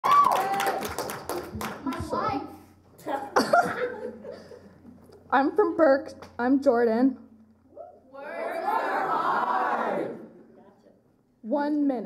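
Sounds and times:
audience clapping and cheering: 0.0 - 2.4.

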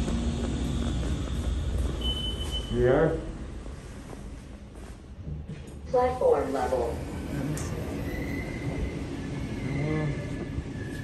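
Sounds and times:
steady low hum: 0.0 - 7.9.

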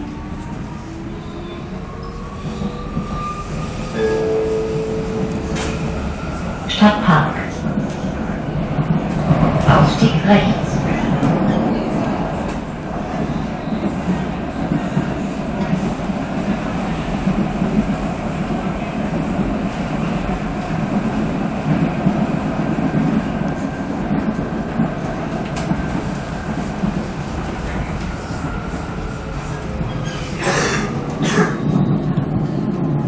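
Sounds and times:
metro car rumbling in tunnel: 0.0 - 33.0.

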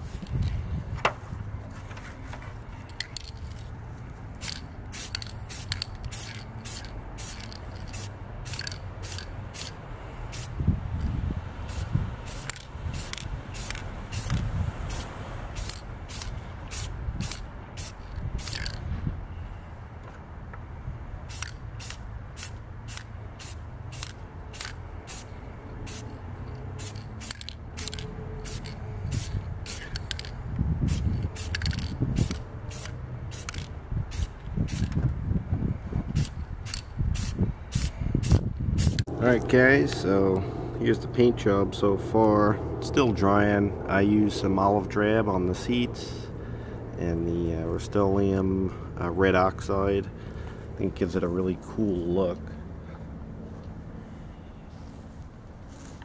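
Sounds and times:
spray can spraying in spurts: 4.4 - 10.6, 11.6 - 18.8, 21.3 - 25.3, 25.9 - 30.3, 30.9 - 35.0, 36.2 - 39.0.

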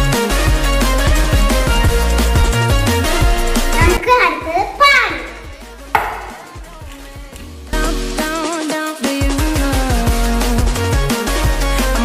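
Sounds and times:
faint background music: 3.0 - 9.0
sharp ringing knocks: 6.0 - 6.6.

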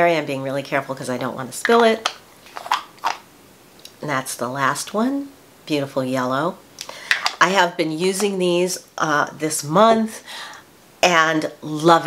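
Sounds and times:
jar lid scraping: 1.8 - 3.2.

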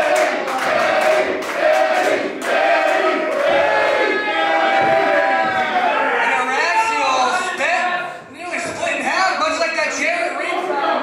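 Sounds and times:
man talking: 6.3 - 11.0.

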